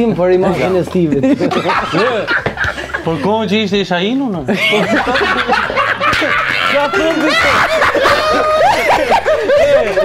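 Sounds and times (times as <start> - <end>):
men talking: 0.0 - 10.0
men laughing: 0.6 - 3.6, 4.5 - 10.0.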